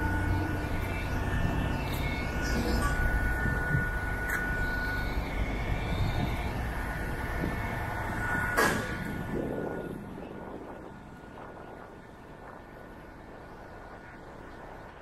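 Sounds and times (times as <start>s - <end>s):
thin steady whine: 0.0s - 15.0s.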